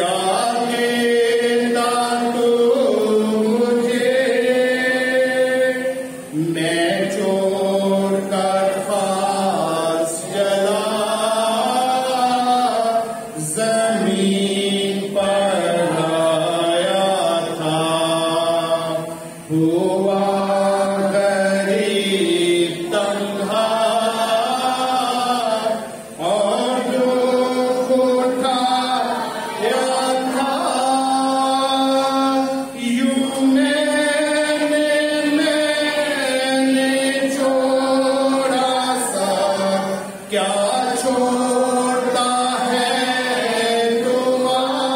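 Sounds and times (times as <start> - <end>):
man singing a hymn unaccompanied: 0.0 - 44.9.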